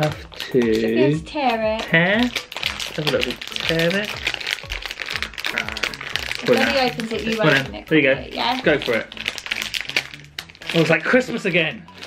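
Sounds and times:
plastic wrapper crinkling: 0:00.0 - 0:12.0.

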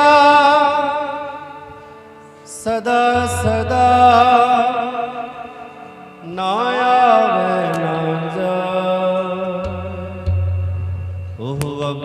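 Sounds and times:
harmonium holding a chord: 0:00.0 - 0:12.0
person singing: 0:00.0 - 0:12.0.

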